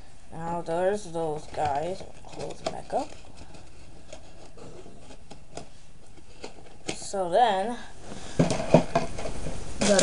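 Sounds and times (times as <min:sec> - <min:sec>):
handling rubbing and scraping: 0:00.5 - 0:07.3, 0:08.0 - 0:10.0.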